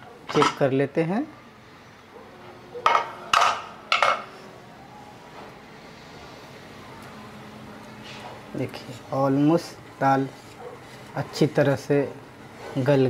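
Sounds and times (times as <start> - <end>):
metal cookware clanking: 0.3 - 0.7, 2.8 - 4.4.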